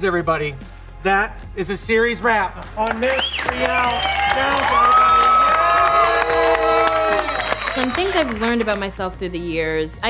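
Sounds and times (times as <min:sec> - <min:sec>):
people clapping: 0:02.5 - 0:09.2
crowd cheering and whooping: 0:03.4 - 0:08.5.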